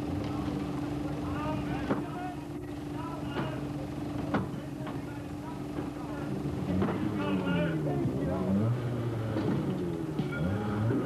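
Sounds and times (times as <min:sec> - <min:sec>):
steady background hum: 0:00.0 - 0:08.4
people's voices: 0:00.0 - 0:11.0.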